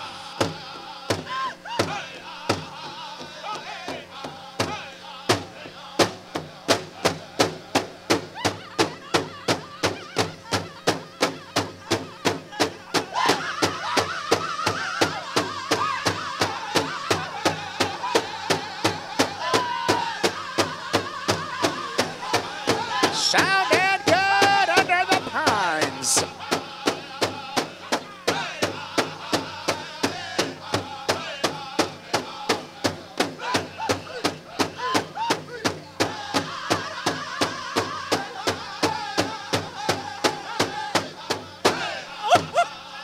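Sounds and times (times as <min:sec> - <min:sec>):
big drum beating steadily: 0:00.0 - 0:42.7
group singing: 0:00.0 - 0:43.0.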